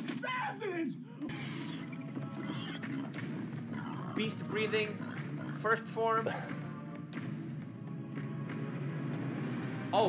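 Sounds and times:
film soundtrack music: 0.0s - 10.0s
animal calls: 1.3s - 5.8s.

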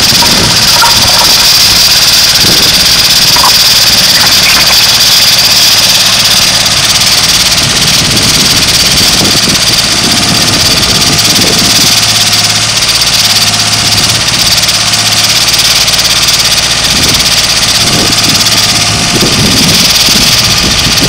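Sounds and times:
trencher engine running: 0.0s - 21.0s.

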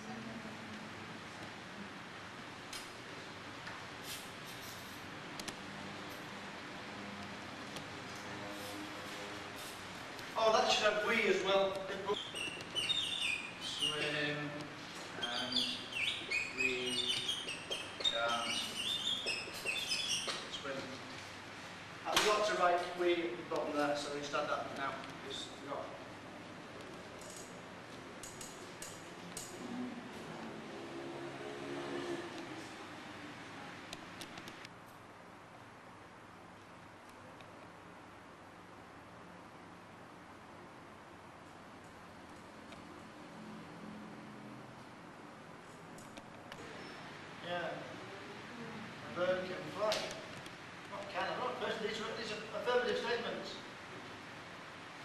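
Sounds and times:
marker squeaking on whiteboard: 11.8s - 14.2s, 15.1s - 20.6s.

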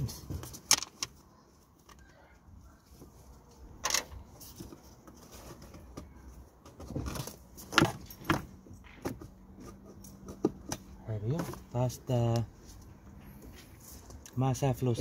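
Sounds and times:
plastic clicks and rubbing: 0.4s - 1.2s.

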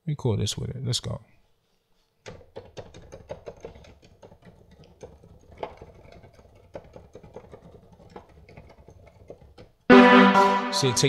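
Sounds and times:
computer keyboard clicking: 2.3s - 9.6s.

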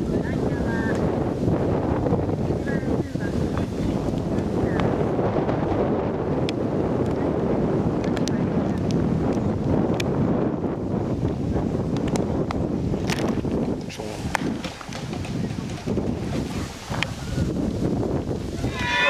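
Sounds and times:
voices: 0.0s - 1.2s, 2.2s - 5.5s, 6.4s - 9.4s, 13.7s - 17.8s, 18.4s - 19.0s
wind buffeting microphone: 0.0s - 19.0s.

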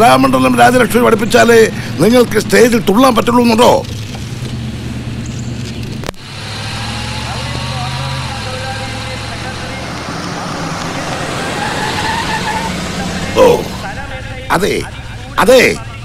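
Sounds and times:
road noise: 0.0s - 16.0s
van engine droning inside cabin: 0.0s - 16.0s
van driving past outside: 4.2s - 15.2s.

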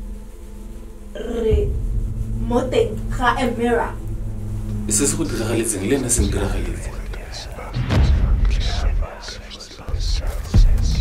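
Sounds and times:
steady low rumble: 0.0s - 11.0s
man speaking: 4.9s - 11.0s.

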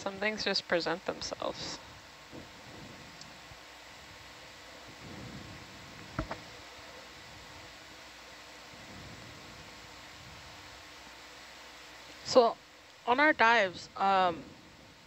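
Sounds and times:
faint steady hiss: 0.0s - 15.0s
low electrical hum: 0.0s - 15.0s.

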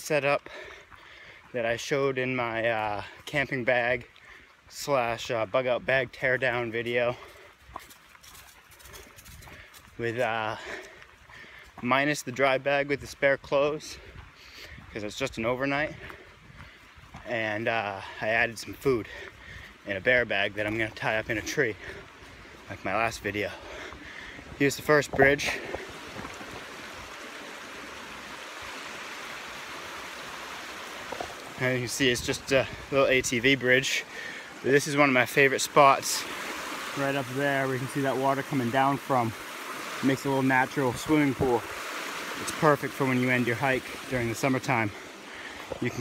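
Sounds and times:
faint footsteps on trail: 0.0s - 46.0s
stream running over rocks: 0.0s - 46.0s.

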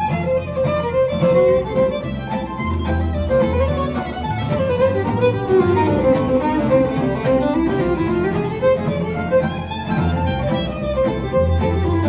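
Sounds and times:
fiddle playing melody: 0.0s - 12.0s
strummed acoustic guitar: 0.0s - 12.0s
walking upright bass: 0.0s - 12.0s.

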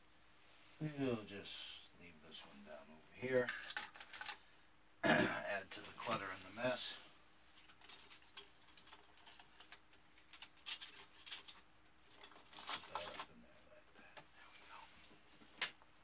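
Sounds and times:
faint clicks and rustles: 3.2s - 4.5s, 5.7s - 16.0s.

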